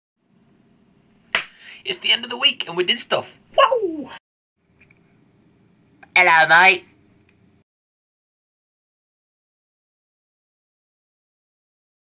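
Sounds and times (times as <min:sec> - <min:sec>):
finger snap: 0:01.3 - 0:01.6.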